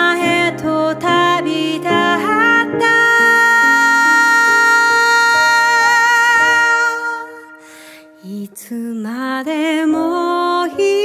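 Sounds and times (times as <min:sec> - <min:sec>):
piano playing: 0:00.0 - 0:11.0.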